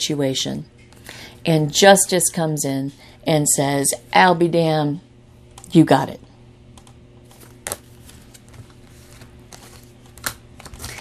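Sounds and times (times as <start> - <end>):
cards clicking: 7.3 - 11.0.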